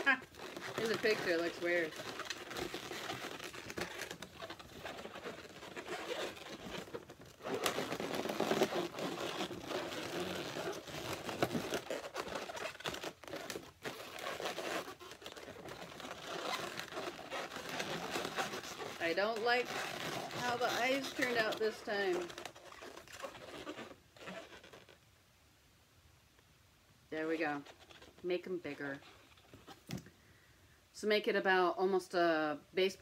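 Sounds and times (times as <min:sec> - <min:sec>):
balloons rubbing and squeaking: 0:00.0 - 0:25.0, 0:27.1 - 0:30.0.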